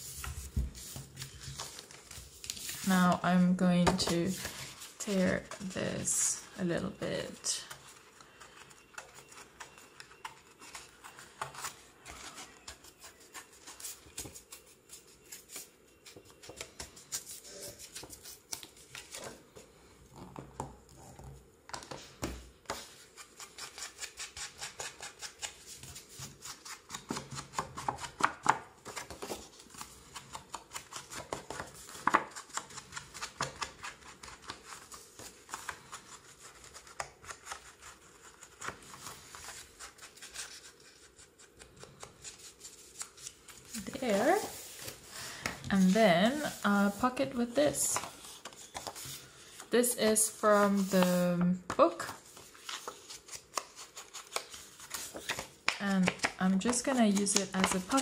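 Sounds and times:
paper sheets handled and rubbed: 0.0 - 19.4, 28.8 - 58.0.

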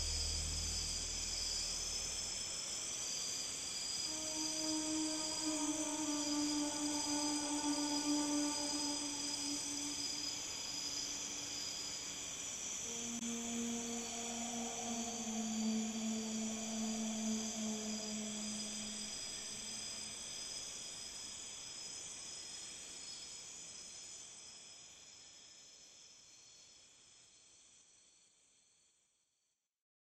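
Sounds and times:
soft relaxation music: 0.0 - 2.4, 4.1 - 11.7, 12.9 - 20.1
sustained low note: 0.0 - 2.5, 4.1 - 11.5, 12.9 - 19.9
high shimmering layer: 0.0 - 2.6, 4.1 - 11.8, 12.9 - 20.1.

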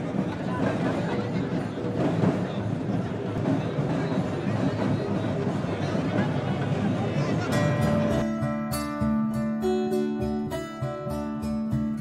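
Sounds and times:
crowd din of many voices: 0.0 - 12.0
strummed music: 7.5 - 12.0.

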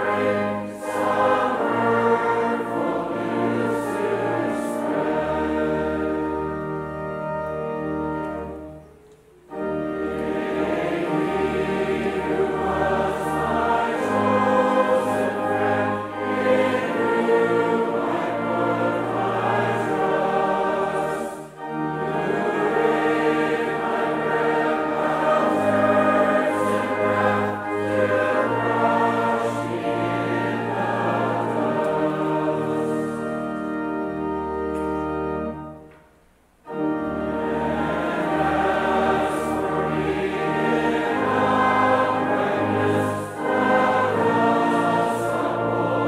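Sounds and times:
congregation singing a psalm: 0.0 - 46.0
pipe organ: 0.0 - 46.0.

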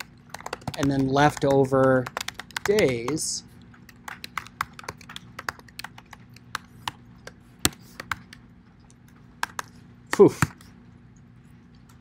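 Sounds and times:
computer keyboard keystrokes: 0.0 - 8.4, 9.4 - 10.6.

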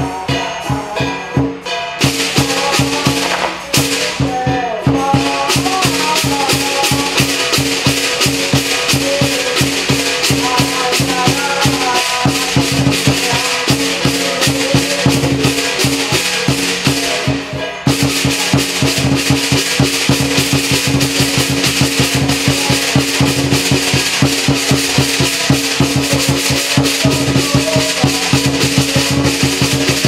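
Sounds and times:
big drum beating: 0.0 - 30.0
cymbals crashing: 0.0 - 30.0
gong: 0.0 - 30.0.

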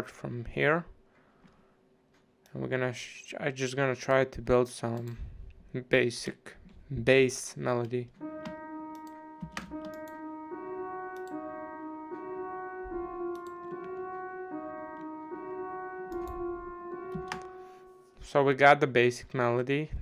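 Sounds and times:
synth playing sustained melody: 8.2 - 18.4.

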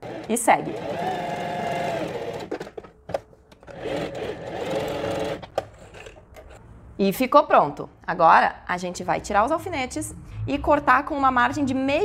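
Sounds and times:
sewing machine stitching: 0.0 - 2.9, 3.6 - 6.6.

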